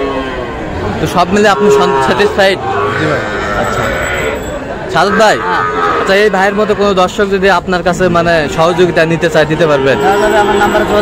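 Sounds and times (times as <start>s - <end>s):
calf mooing: 0.0s - 7.2s, 9.1s - 10.9s.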